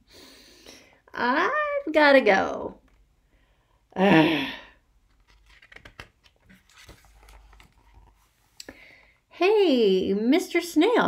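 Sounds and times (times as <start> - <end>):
paper page rustling: 5.0 - 8.6.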